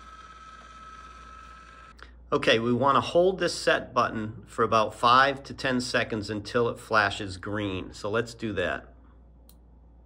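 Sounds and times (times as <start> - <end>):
valve motor whine: 0.0 - 2.0.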